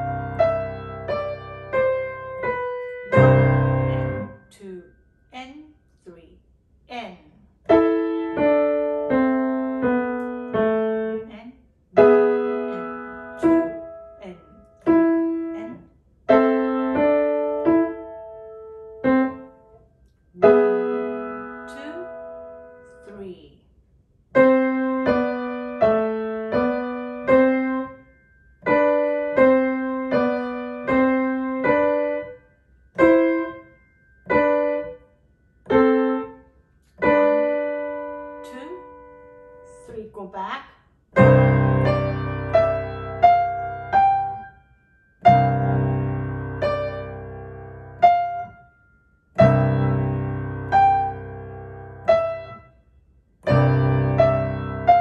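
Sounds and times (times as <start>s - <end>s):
piano playing simple piece: 0.0s - 4.6s, 7.6s - 11.4s, 12.0s - 19.8s, 20.4s - 23.3s, 24.3s - 40.0s, 41.1s - 52.8s, 53.4s - 55.0s.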